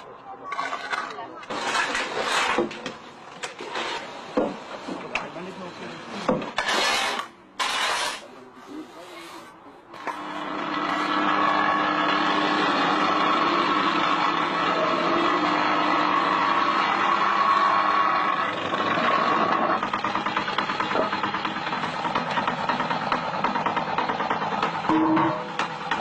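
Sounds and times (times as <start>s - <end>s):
engine running: 9.9s - 26.0s.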